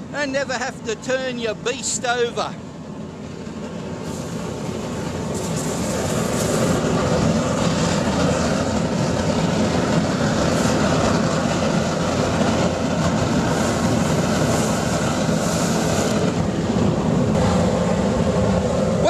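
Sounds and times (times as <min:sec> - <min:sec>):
burner flame and blower rushing: 0:02.6 - 0:19.0.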